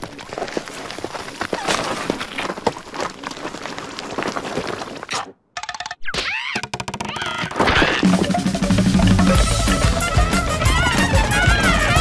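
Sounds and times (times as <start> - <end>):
squealing cry rising and falling: 6.1 - 8.2.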